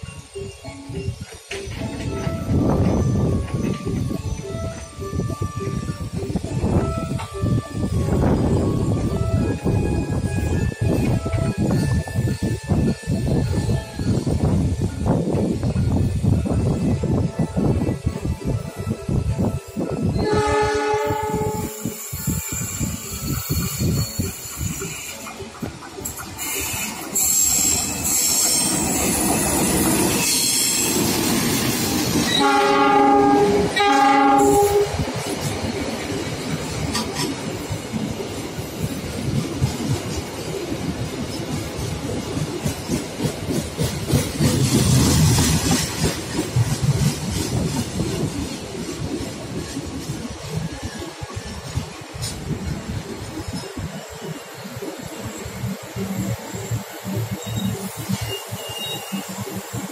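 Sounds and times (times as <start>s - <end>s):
train wheels clattering over rails: 0.9s - 59.9s
locomotive horn blast: 20.1s - 22.0s, 32.3s - 35.0s.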